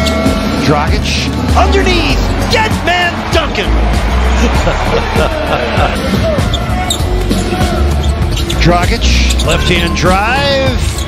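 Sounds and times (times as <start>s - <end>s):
background music: 0.0s - 11.0s.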